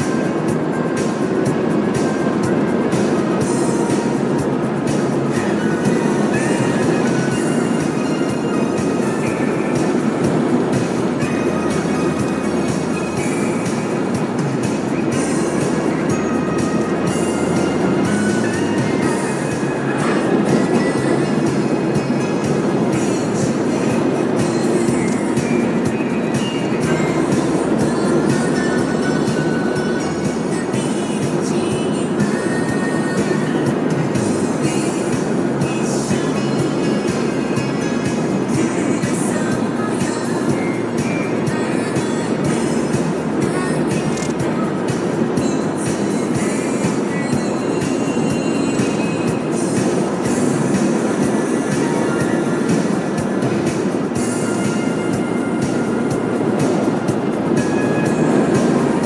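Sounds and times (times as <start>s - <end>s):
music over car stereo: 0.0s - 59.0s
road and engine noise: 0.0s - 59.0s.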